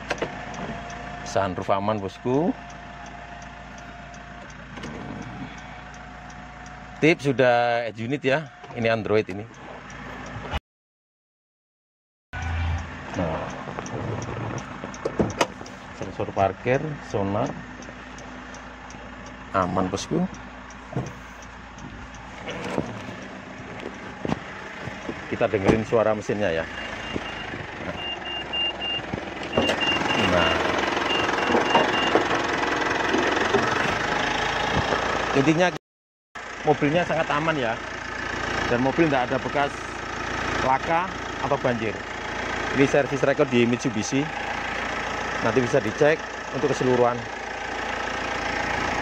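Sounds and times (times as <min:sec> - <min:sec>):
light regular ticking: 0:00.0 - 0:07.3, 0:12.8 - 0:32.0
diesel engine idling: 0:00.0 - 0:10.5, 0:12.4 - 0:35.8, 0:36.4 - 0:49.0
parking sensor beeping: 0:24.9 - 0:32.3.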